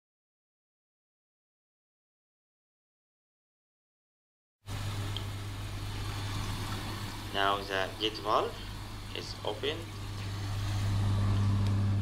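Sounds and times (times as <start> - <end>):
pump humming: 4.7 - 12.0
water flowing through pipes: 4.7 - 12.0.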